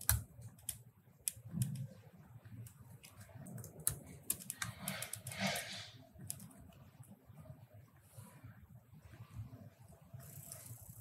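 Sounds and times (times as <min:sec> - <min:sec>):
computer keyboard clicks: 0:00.0 - 0:02.0, 0:02.6 - 0:05.5, 0:06.2 - 0:06.6.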